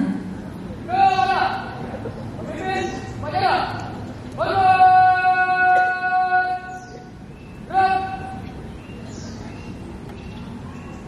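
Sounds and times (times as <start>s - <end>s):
person shouting drill command: 0.9s - 1.7s, 4.4s - 6.7s, 7.7s - 8.4s.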